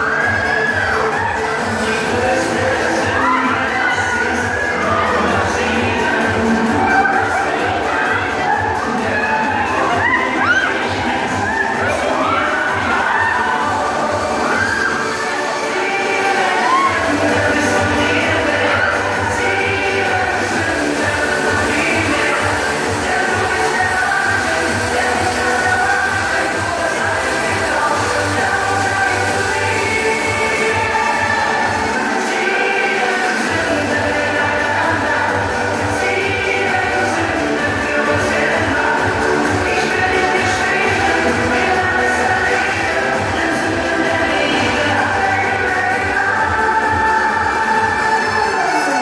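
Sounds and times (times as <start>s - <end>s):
riders screaming and shouting: 0.0s - 34.8s
loud music with heavy bass beat: 0.0s - 49.0s.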